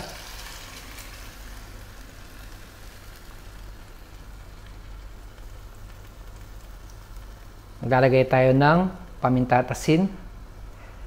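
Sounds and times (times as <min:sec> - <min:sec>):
braising liquid sizzling and bubbling: 0:00.0 - 0:11.0.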